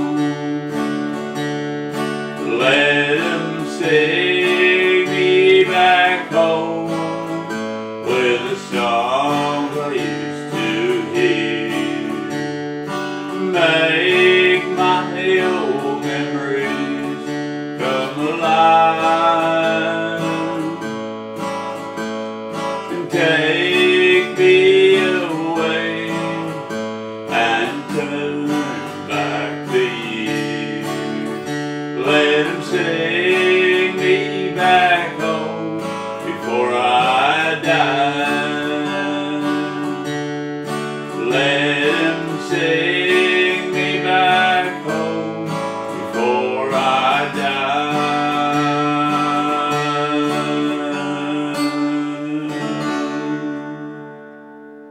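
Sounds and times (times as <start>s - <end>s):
acoustic guitar strummed and picked: 0.0s - 54.9s
sliding guitar melody: 0.0s - 54.9s.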